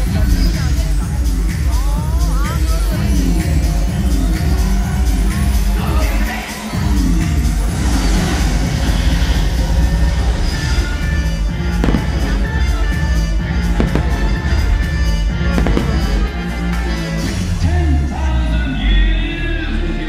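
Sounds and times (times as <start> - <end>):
show music over sound system: 0.0 - 20.0
fireworks crackling: 7.3 - 17.6
fireworks bursting: 8.0 - 17.4.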